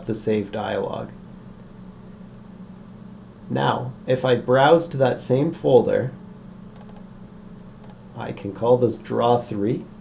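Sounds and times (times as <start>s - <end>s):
computer mouse clicks: 6.7s - 7.1s, 7.8s - 8.0s.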